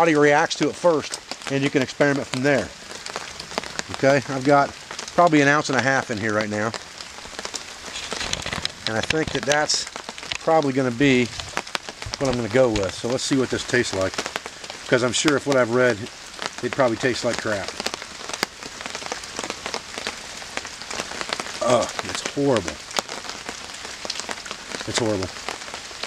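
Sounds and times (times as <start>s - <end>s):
light rain on leaf litter: 0.0s - 26.0s.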